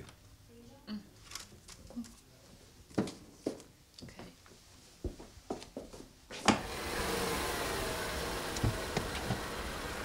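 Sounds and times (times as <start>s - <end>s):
low engine rumble: 6.7s - 10.0s
car door clicks and knocks: 8.5s - 9.6s.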